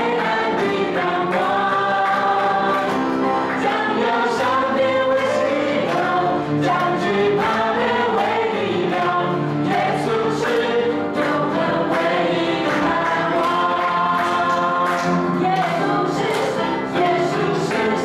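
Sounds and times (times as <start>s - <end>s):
acoustic guitar: 0.0s - 18.0s
group singing into microphones: 0.0s - 18.0s
piano: 0.0s - 18.0s.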